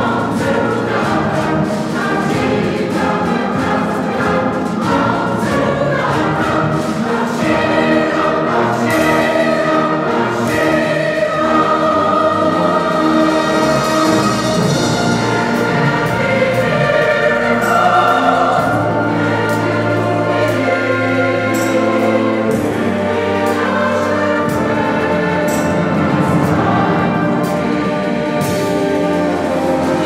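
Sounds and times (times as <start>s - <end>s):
mixed choir singing: 0.0s - 30.0s
string orchestra: 0.0s - 30.0s.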